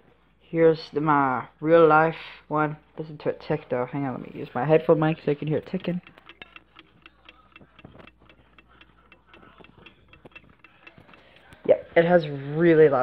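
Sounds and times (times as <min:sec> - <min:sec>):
alarm clock ticking: 0:05.2 - 0:12.0.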